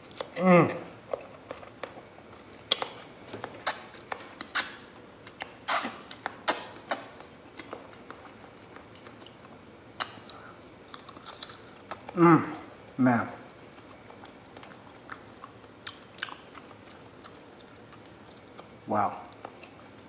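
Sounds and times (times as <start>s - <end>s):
chewing noodles: 5.3s - 12.2s, 12.8s - 20.0s.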